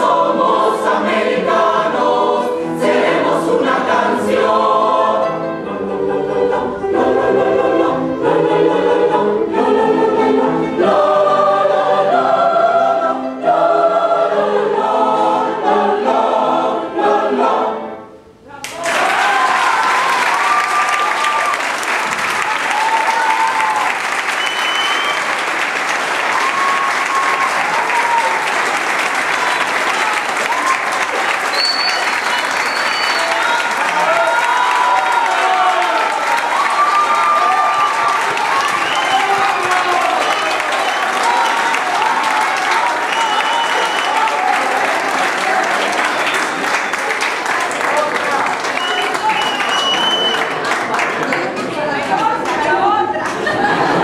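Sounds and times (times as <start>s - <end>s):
audience applauding: 18.6s - 54.0s.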